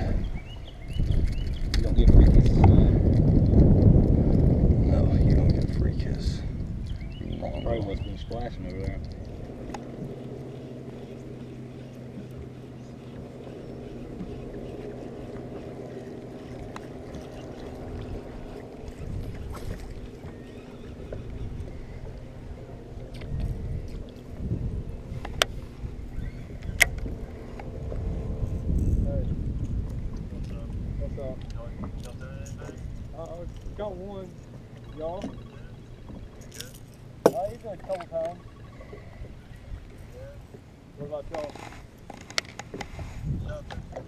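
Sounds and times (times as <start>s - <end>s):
low rumble: 0.0s - 37.7s
boat motor humming: 0.0s - 44.0s.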